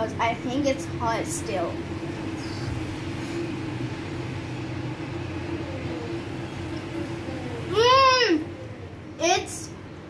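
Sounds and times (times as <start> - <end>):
kitchen background hum: 0.0 - 10.0.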